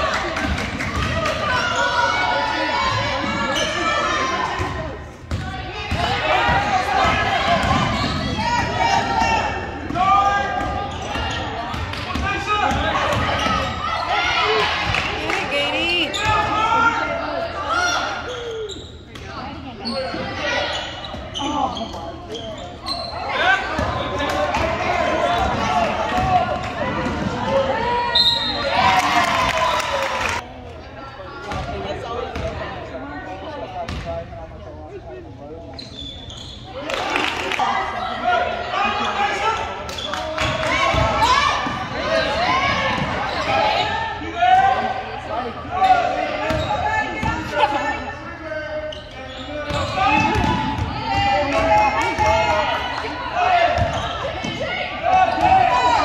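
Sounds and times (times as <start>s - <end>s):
echoing voices calling and talking: 0.0s - 56.0s.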